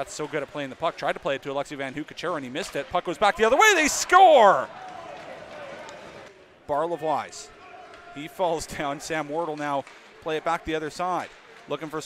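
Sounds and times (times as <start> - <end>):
man speaking: 3.3 - 4.7
arena background noise: 3.4 - 4.7.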